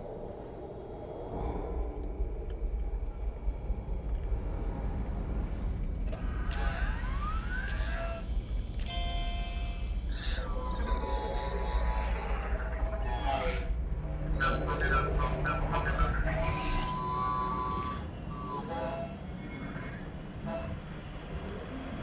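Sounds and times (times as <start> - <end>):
low rumble: 0.0 - 18.3.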